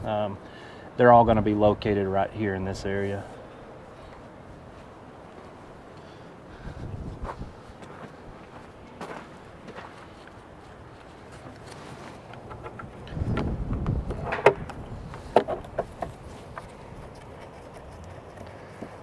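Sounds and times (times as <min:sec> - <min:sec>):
low rumbling bumps: 0:11.4 - 0:17.2.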